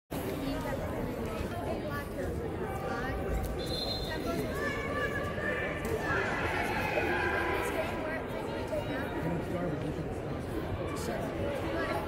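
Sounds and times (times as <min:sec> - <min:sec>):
chatter of many voices: 0:00.1 - 0:12.0.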